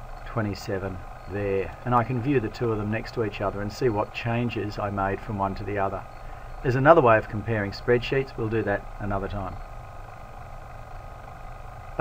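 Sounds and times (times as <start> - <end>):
faint hiss: 0.0 - 12.0
low background hum: 0.0 - 12.0.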